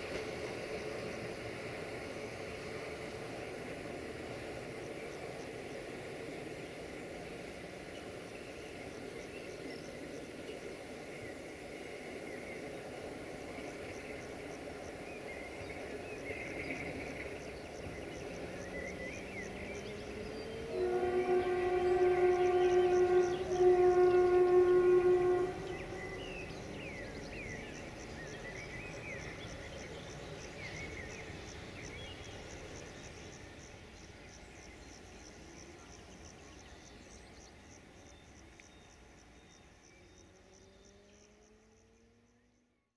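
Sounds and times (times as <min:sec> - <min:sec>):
low rumble of departing train: 0:00.0 - 0:42.9
locomotive horn blasts: 0:20.6 - 0:26.4.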